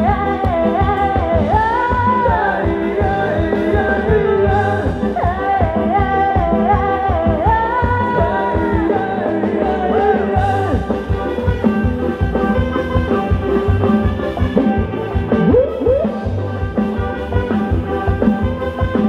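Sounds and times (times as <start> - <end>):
live band playing dance music: 0.0 - 19.0.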